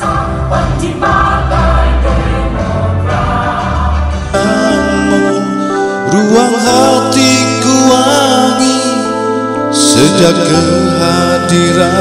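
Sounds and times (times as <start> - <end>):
choir singing with accompaniment: 0.0 - 12.0.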